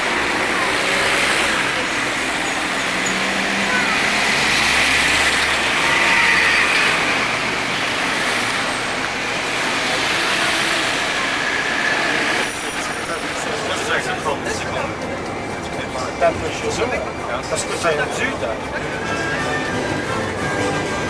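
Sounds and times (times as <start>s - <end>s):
indistinct voices: 0.0s - 21.0s
street traffic noise: 0.0s - 21.0s.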